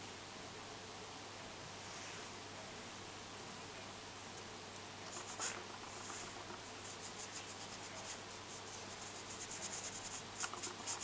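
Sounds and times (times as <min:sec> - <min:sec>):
colored pencil scratching on paper: 0:05.1 - 0:11.0.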